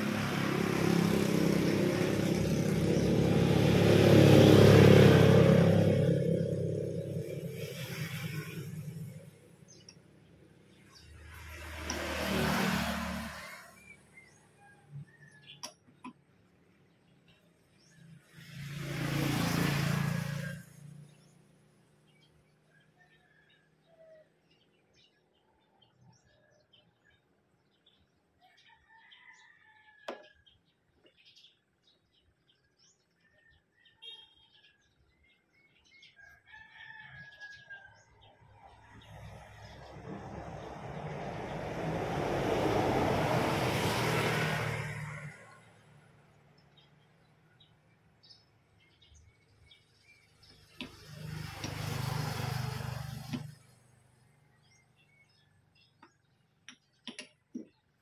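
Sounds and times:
broad rushing noise: 0.0s - 9.4s
vehicle passing by: 0.0s - 15.4s, 17.8s - 22.3s, 38.2s - 47.4s, 49.0s - 55.4s
birds chirping: 0.1s - 42.8s, 43.8s - 58.0s
rooster crowing: 28.7s - 30.3s, 36.2s - 38.3s.

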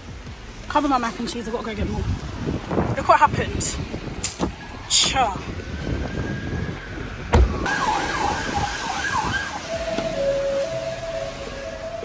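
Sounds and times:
emergency vehicle siren: 4.7s - 12.0s
loud thump: 7.3s - 7.7s.

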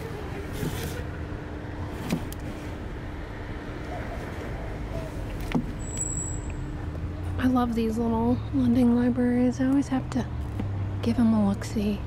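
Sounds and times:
road traffic rumble: 0.0s - 12.0s.

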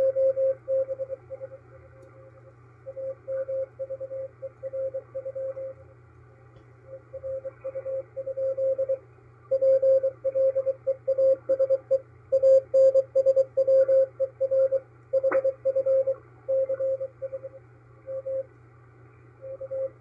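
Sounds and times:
morse code tone: 0.0s - 1.5s, 7.2s - 18.4s
faint radio hiss and hum: 0.0s - 20.0s.

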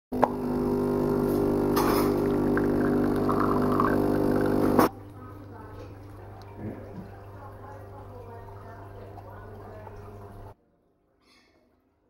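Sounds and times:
espresso machine pump humming: 0.1s - 10.6s.

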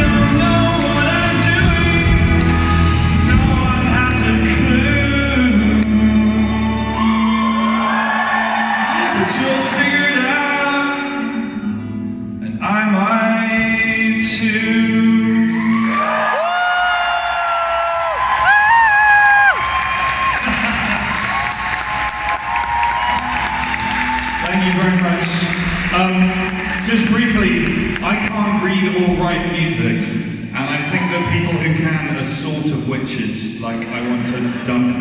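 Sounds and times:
man singing: 0.0s - 7.7s, 8.8s - 11.6s, 12.4s - 15.8s
acoustic guitar: 0.0s - 16.0s, 22.8s - 32.9s
audience applause: 6.4s - 10.3s, 15.5s - 28.6s.

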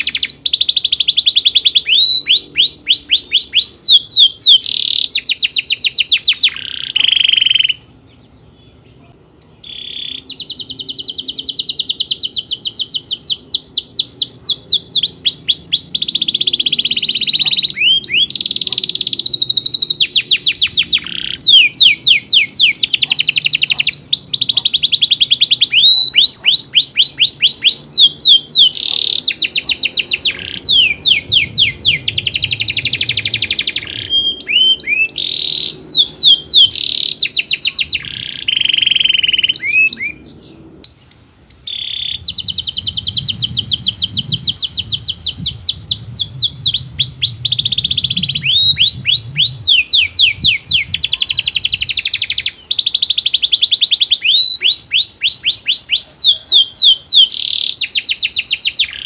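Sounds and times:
canary singing trills: 0.0s - 59.0s.

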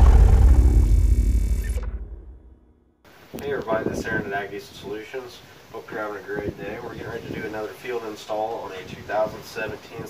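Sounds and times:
deep rumbling boom: 0.0s - 2.9s.

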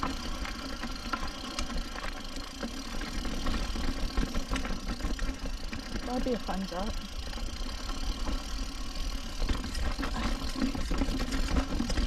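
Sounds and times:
bike clicks and rattles: 0.0s - 12.0s
bike rumbling over rocky trail: 0.0s - 12.0s.

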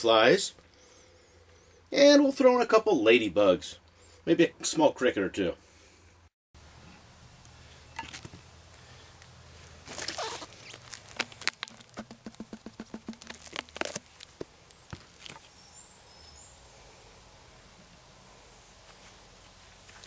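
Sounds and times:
gloved hand knocking on glass jar: 12.0s - 13.3s.

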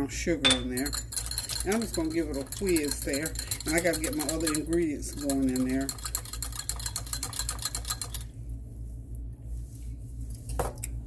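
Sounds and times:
whisk clicking in ceramic bowl: 0.5s - 8.3s.

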